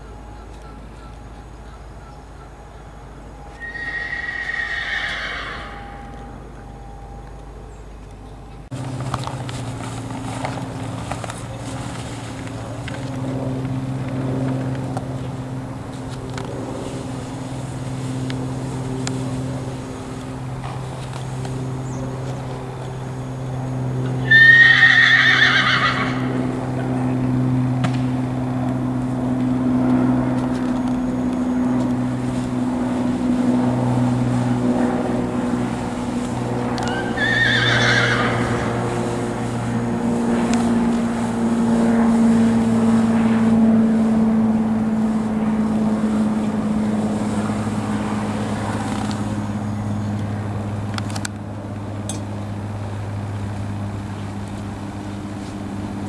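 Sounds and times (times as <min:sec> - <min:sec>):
low mechanical hum: 0:00.0 - 0:56.0
horse whinnying: 0:03.6 - 0:06.2, 0:24.2 - 0:26.3, 0:36.8 - 0:38.7.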